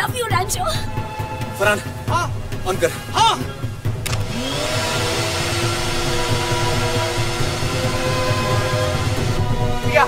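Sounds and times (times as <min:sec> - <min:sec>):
vacuum cleaner running: 0:04.1 - 0:10.0.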